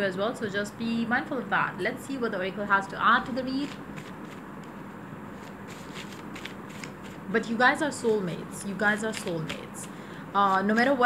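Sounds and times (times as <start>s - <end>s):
cards being shuffled: 3.5s - 7.3s, 7.9s - 11.0s.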